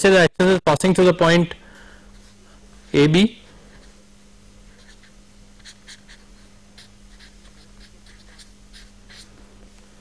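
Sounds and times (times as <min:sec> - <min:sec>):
steady low hum: 0:00.0 - 0:10.0
scratching of writing strokes: 0:04.7 - 0:09.3.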